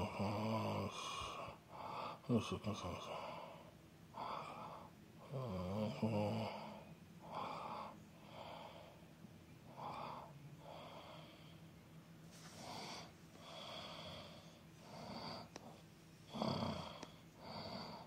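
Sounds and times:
man breathing heavily: 0:01.0 - 0:02.3, 0:03.1 - 0:05.3, 0:06.3 - 0:09.1, 0:09.7 - 0:11.8, 0:12.4 - 0:18.0.

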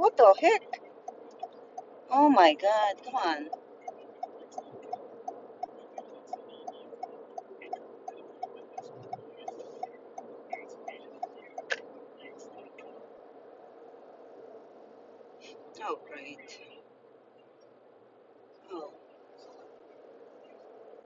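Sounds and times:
turn signal ticking: 0:00.0 - 0:12.9
low car cabin hum: 0:00.0 - 0:21.0.

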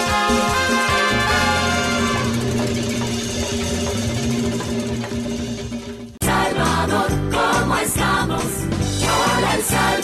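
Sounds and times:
horns: 0:00.0 - 0:03.4
live dance band playing: 0:00.0 - 0:06.1
strong bass line: 0:01.1 - 0:06.4.

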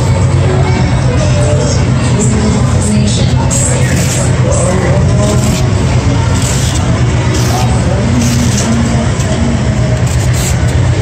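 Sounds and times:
cars driving by: 0:00.0 - 0:11.0
din of engines and tyres: 0:00.0 - 0:11.0.

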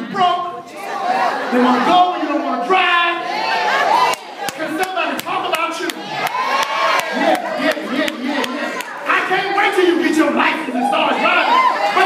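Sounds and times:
congregation shouting and cheering: 0:00.0 - 0:12.0.

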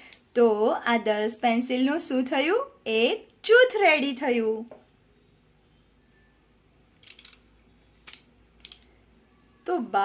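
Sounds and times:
pencils knocking and rubbing: 0:06.9 - 0:08.9.

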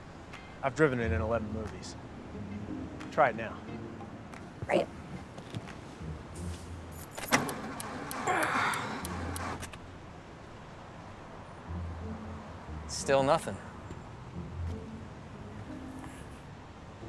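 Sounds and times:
keys jangling and clicking: 0:06.9 - 0:07.5.

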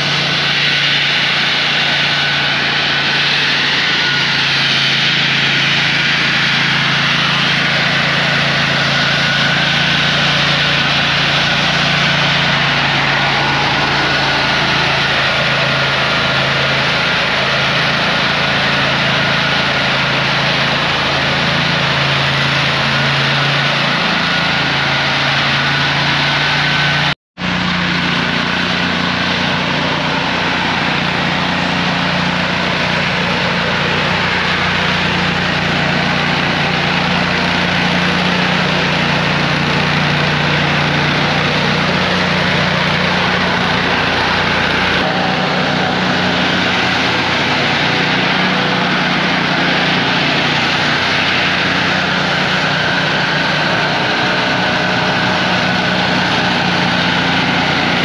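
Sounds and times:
leaf blower engine running: 0:00.0 - 0:58.0.

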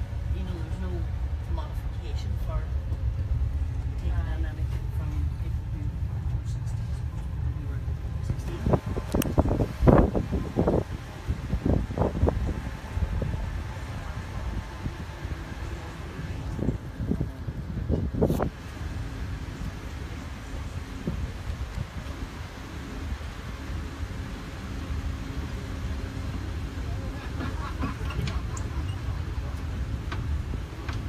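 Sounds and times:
low rumble of land train: 0:00.0 - 0:31.0.

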